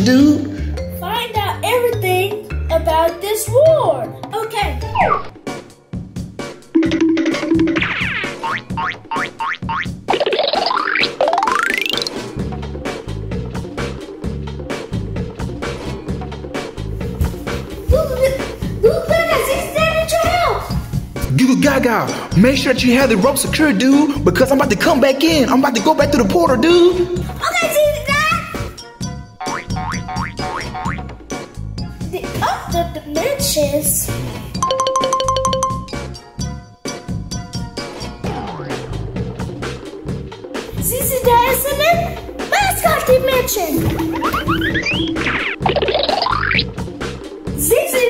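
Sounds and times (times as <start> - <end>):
playful music with bass beat: 0.0 - 48.0
cartoon springy boings: 4.9 - 5.3, 6.7 - 12.3, 29.4 - 31.2, 38.3 - 38.9, 43.8 - 46.7
rising cartoon swoops: 10.2 - 12.3, 43.6 - 46.7
rising sweep: 43.7 - 46.2.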